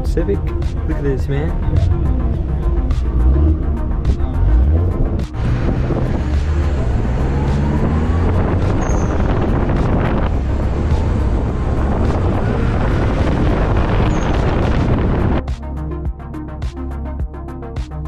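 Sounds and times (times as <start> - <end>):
road and engine rumble: 0.0 - 15.5
electronic music with steady beat: 0.0 - 18.0
wind buffeting microphone: 4.0 - 15.4.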